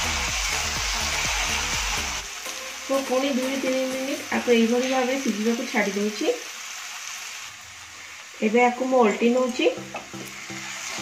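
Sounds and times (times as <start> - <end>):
mushrooms sizzling in oil: 0.0 - 11.0.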